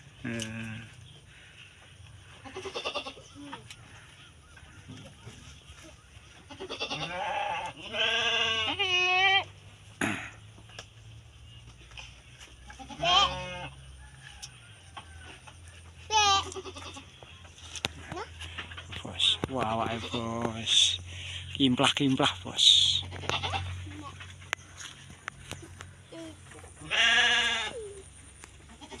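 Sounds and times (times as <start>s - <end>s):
goat bleating: 2.2s - 3.4s, 6.3s - 9.6s, 12.7s - 13.8s, 16.0s - 17.3s, 22.7s - 24.4s, 26.0s - 29.0s.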